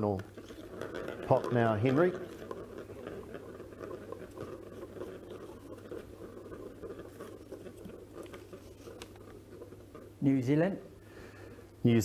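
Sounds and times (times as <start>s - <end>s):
paper rustling: 0.0s - 10.5s.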